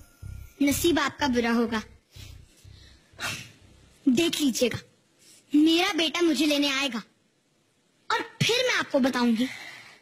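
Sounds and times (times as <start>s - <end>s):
low hum: 0.0s - 5.2s.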